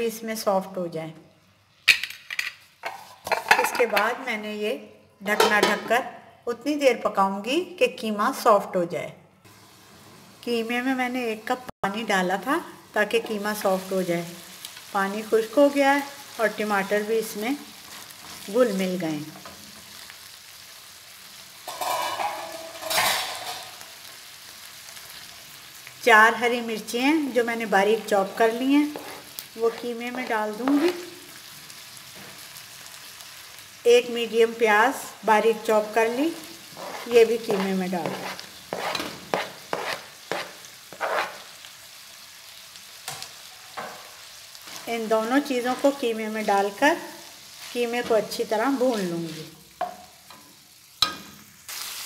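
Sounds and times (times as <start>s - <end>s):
cookware clattering: 1.9s - 4.2s, 5.3s - 6.0s, 21.7s - 23.7s
meat sizzling in a pan: 9.4s - 11.3s, 11.9s - 52.0s
spatula scraping a pan: 21.7s - 23.7s, 28.4s - 30.0s, 36.6s - 41.6s.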